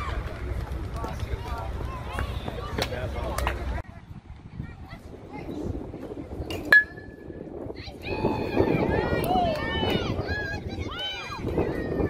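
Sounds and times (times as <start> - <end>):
metal bat hitting ball: 6.5 - 7.2
spectators shouting and cheering: 7.6 - 12.0.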